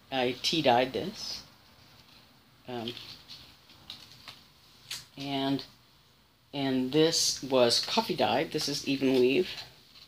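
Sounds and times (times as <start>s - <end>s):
fabric rustling: 1.5s - 4.9s, 7.7s - 10.0s.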